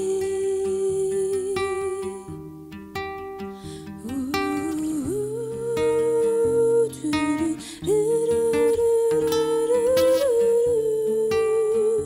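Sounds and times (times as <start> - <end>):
plucked acoustic guitar: 0.0 - 12.0
woman singing a held note: 4.8 - 12.0.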